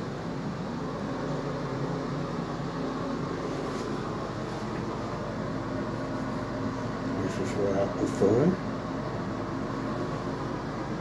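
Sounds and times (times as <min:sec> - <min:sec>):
ventilation fan humming: 0:00.0 - 0:11.0.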